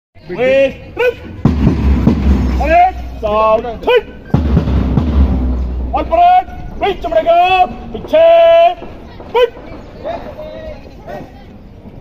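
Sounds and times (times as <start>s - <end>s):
drum beating marching time: 1.2s - 10.5s.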